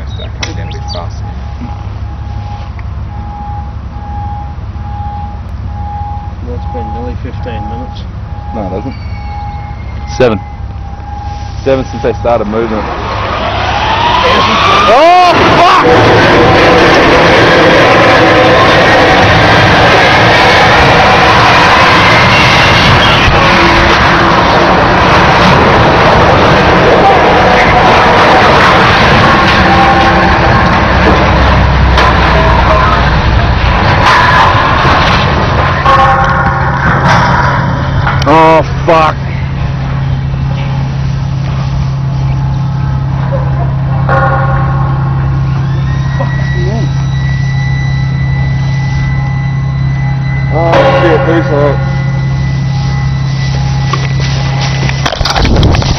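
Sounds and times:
loud continuous machine noise: 0:00.0 - 0:55.9
low engine drone: 0:00.0 - 0:55.9
siren-like wail: 0:00.0 - 0:55.9.

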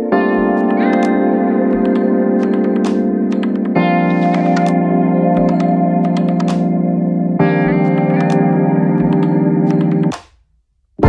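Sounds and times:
electric guitar chords with echo: 0:00.0 - 0:10.1.

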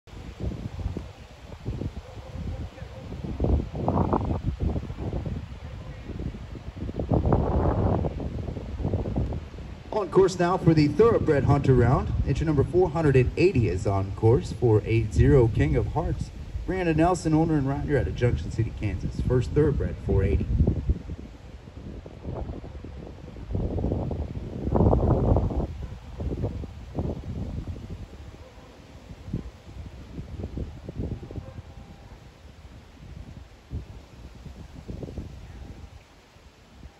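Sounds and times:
wind buffeting microphone: 0:00.1 - 0:36.9.

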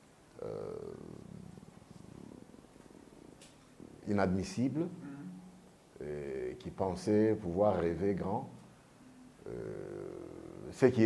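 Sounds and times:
man hesitating creaky voice: 0:00.3 - 0:01.8, 0:09.4 - 0:11.0
breathy hiss: 0:00.3 - 0:03.1, 0:09.4 - 0:11.0
man speaking: 0:00.4 - 0:01.4, 0:04.0 - 0:05.4, 0:06.0 - 0:08.6, 0:09.4 - 0:11.0.

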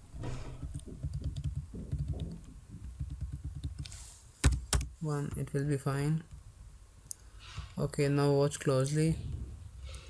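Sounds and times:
computer keyboard typing: 0:00.7 - 0:04.9.

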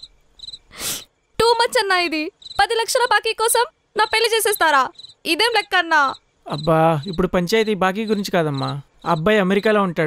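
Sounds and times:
faint high chirps: 0:00.0 - 0:10.0.

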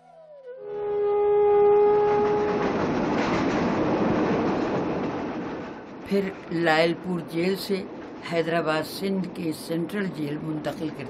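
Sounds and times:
train whistle: 0:00.0 - 0:03.3
train running on rails: 0:00.2 - 0:11.0.

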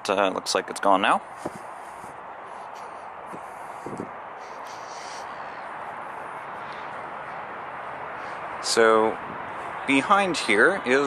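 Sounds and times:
distant traffic hum: 0:00.0 - 0:11.0.

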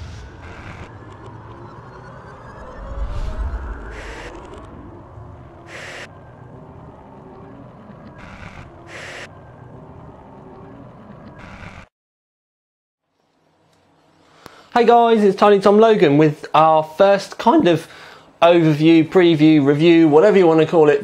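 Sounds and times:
deep low hit: 0:00.0 - 0:06.6
held synth notes with gliding tones: 0:00.0 - 0:11.3.

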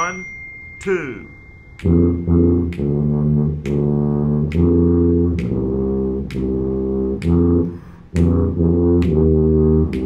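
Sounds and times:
sharp metronome clicks: 0:00.0 - 0:10.0
tuba playing slow notes: 0:01.8 - 0:10.0.

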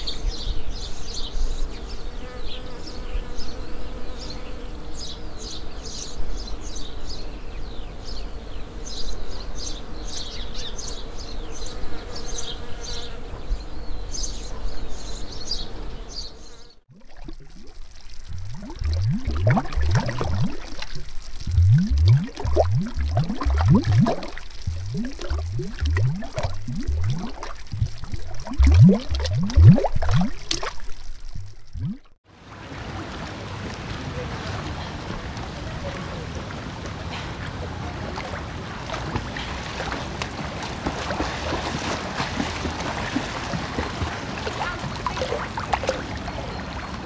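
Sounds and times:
watery bubble bloops: 0:16.9 - 0:32.2.

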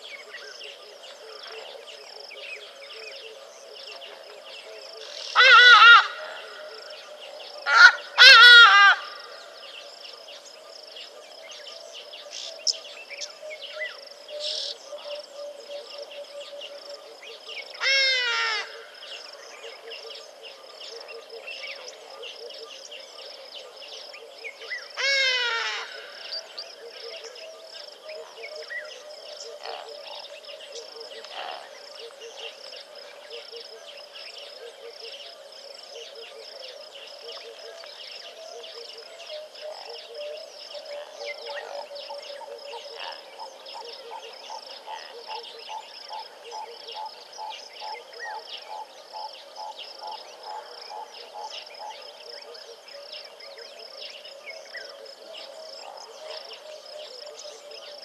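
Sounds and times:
insects chorus: 0:00.0 - 0:58.0.

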